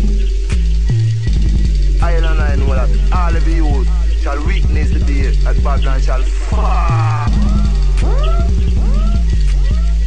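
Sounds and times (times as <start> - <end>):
chopped breakbeat: 0.0 - 10.0
deep sub-bass: 0.0 - 10.0.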